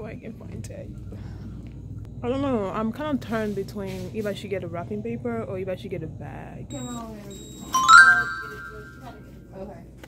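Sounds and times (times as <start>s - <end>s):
payment terminal chime: 6.7s - 9.2s.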